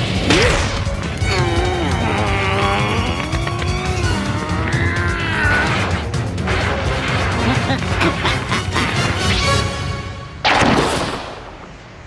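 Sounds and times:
background music: 0.0s - 10.7s.

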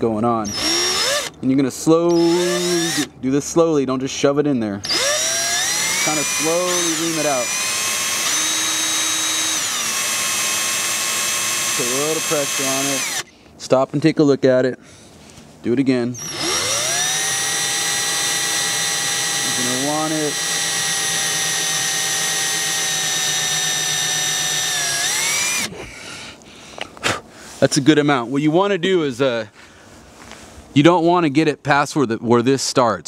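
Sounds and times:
power drill drilling plastic: 0.5s - 1.4s, 2.1s - 3.1s, 4.8s - 13.3s, 16.2s - 25.7s.

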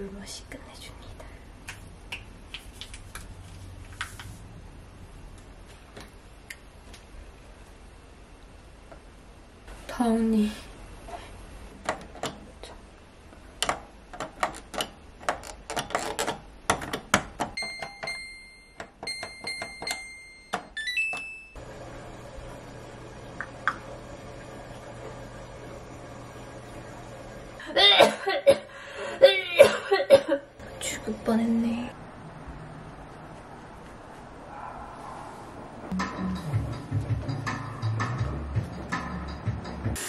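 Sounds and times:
washing machine humming: 16.4s - 34.8s.

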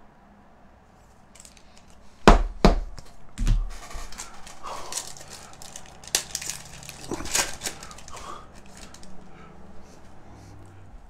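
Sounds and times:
knocks and thump: 2.3s - 3.9s
foil pack crinkling: 3.4s - 9.2s.

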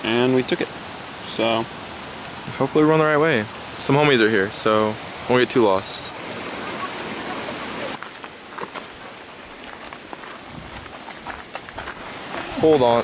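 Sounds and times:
steady hiss: 0.0s - 13.0s.

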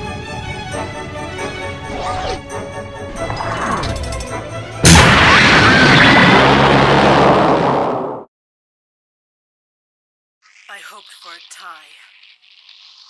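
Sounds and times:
dramatic soundtrack music: 0.0s - 7.8s
rumbling explosion: 4.8s - 8.2s.

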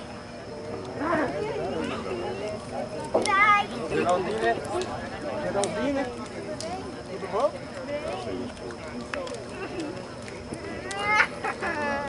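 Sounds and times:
low crowd chatter: 0.0s - 12.0s.

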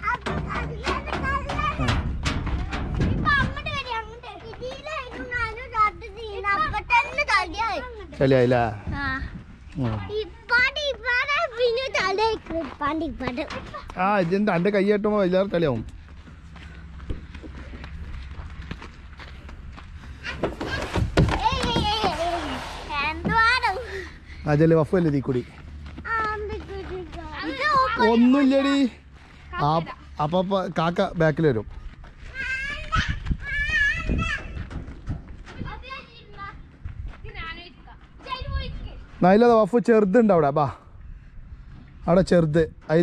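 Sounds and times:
dull low thumps: 0.0s - 7.0s, 31.6s - 37.5s
child running on gravelly dirt: 10.9s - 20.7s, 24.3s - 39.4s.

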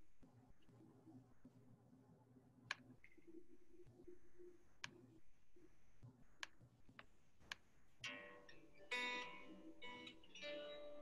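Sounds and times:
click: 2.7s - 3.2s, 4.8s - 5.0s.

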